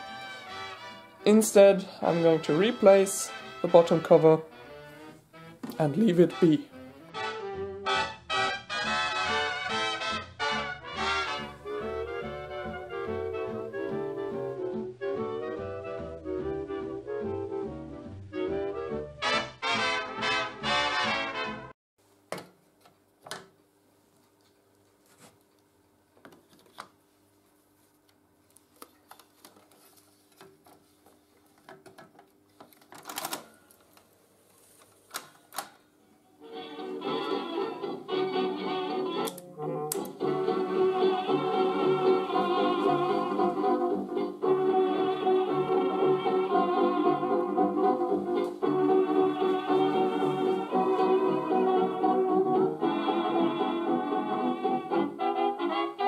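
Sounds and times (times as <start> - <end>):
music from tape recorder speaker: 0.0 - 21.6, 36.4 - 56.0.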